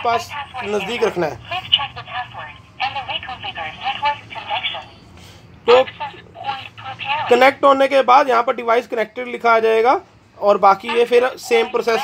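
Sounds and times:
person talking: 0:10.5 - 0:12.0.

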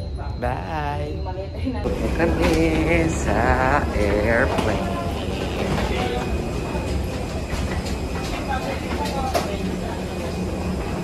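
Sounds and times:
passengers walking: 0:00.0 - 0:11.0.

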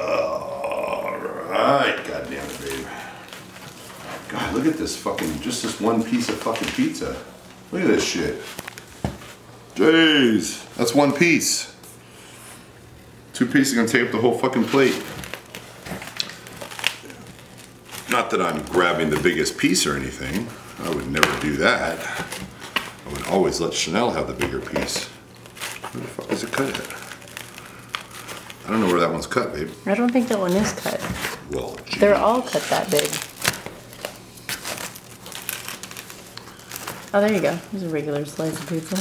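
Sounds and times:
cardboard box crinkling and scraping: 0:30.2 - 0:39.0.

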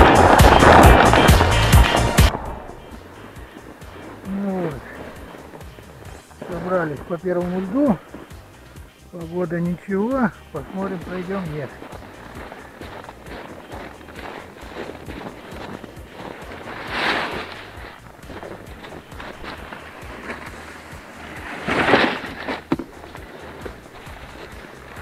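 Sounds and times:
swishing rustles: 0:00.0 - 0:08.9, 0:10.0 - 0:25.0
footsteps crunching through snow: 0:00.0 - 0:25.0.

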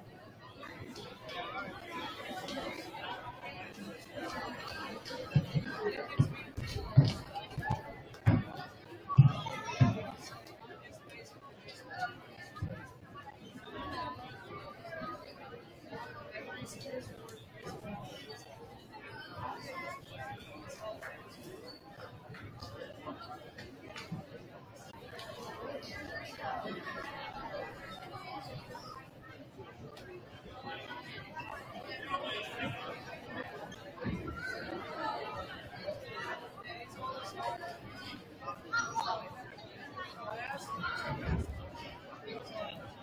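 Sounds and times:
children chattering: 0:00.0 - 0:43.0
voices: 0:00.0 - 0:43.0.

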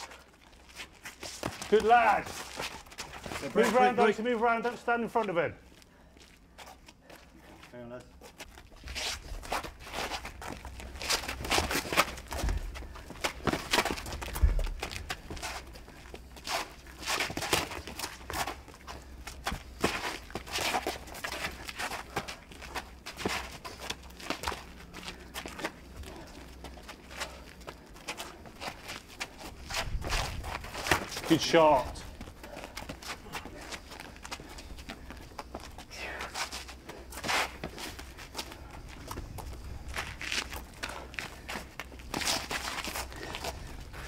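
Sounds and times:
shuffling feet: 0:00.0 - 0:44.0.

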